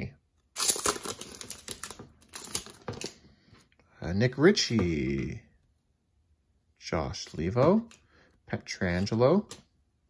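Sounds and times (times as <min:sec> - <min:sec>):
plastic wrapper tearing and crinkling: 0:00.6 - 0:02.9.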